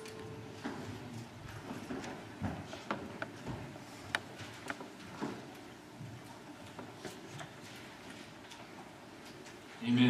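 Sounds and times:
footsteps on a floor: 0.0s - 9.7s.

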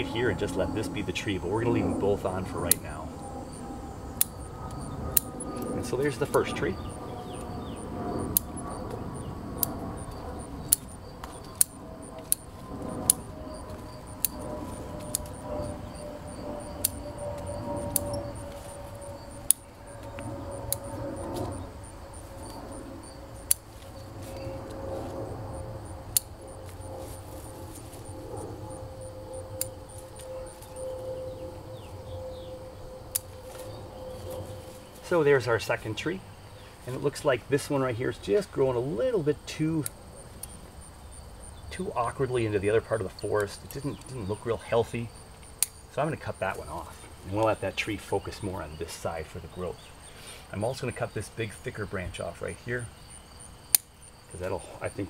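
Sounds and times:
steady falling hum: 0.0s - 50.0s
shears snipping branches: 9.6s - 15.7s, 16.8s - 22.8s, 23.4s - 25.2s.

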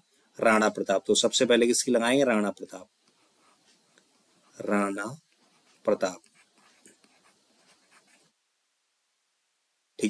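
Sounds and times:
stylus scratching on a tablet: 3.1s - 8.4s.

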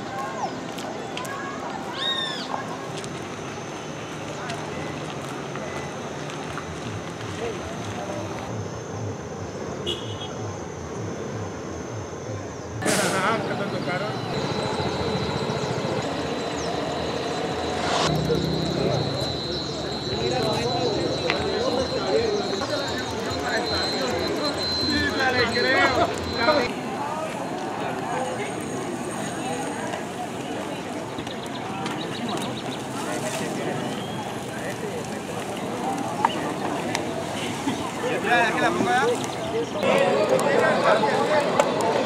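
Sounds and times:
distant voices talking: 10.4s - 42.0s
faint high whine: 11.7s - 26.7s.

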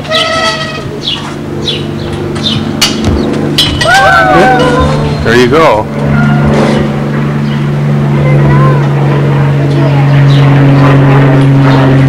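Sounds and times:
higher steady tone: 0.0s - 11.9s
low mechanical hum: 0.0s - 12.0s.

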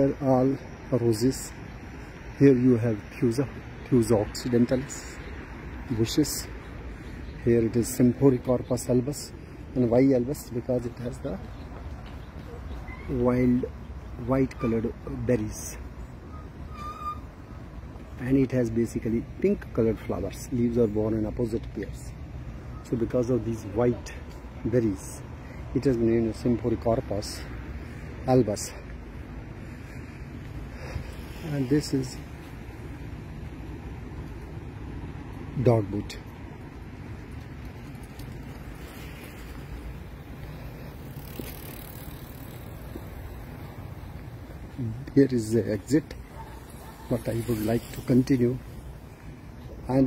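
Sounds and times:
bicycle going past: 27.2s - 50.0s.

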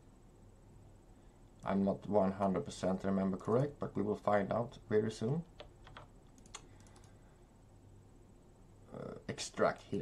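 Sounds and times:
computer mouse clicking: 5.6s - 7.2s.

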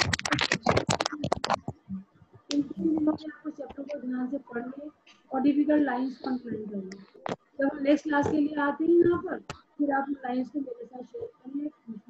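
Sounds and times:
computer keyboard typing: 0.0s - 1.8s.

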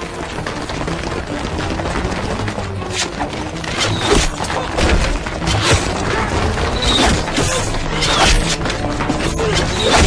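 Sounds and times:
armoured soldiers charging on foot: 0.0s - 9.8s
dramatic music: 0.0s - 10.0s.

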